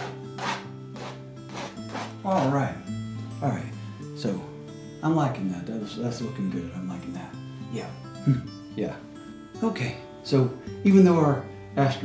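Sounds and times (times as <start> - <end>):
palette knife scraping canvas: 0.0 - 2.6
soft background music: 0.0 - 12.0.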